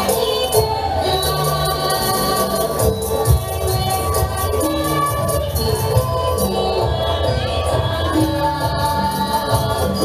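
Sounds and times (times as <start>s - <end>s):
people singing: 0.0s - 10.0s.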